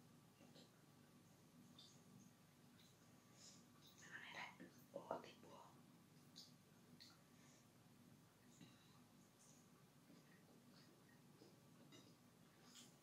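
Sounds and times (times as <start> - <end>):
soft chewing: 0.2 - 13.0.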